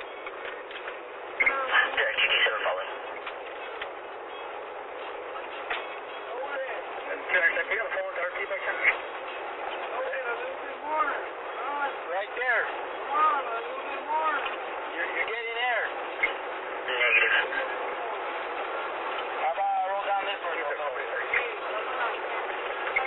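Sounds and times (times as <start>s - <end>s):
road noise inside car: 0.0s - 23.0s
indistinct voices: 1.2s - 4.3s, 5.1s - 23.0s.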